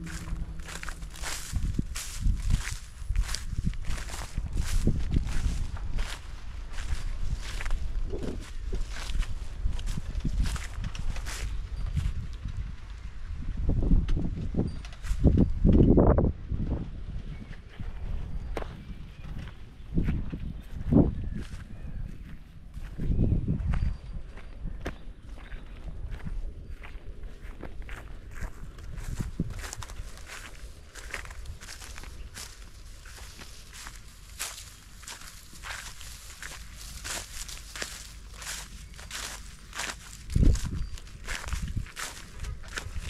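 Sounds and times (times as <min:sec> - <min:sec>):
low thuds: 0:00.0 - 0:06.0
footsteps crunching through straw: 0:00.0 - 0:12.3, 0:25.3 - 0:43.0.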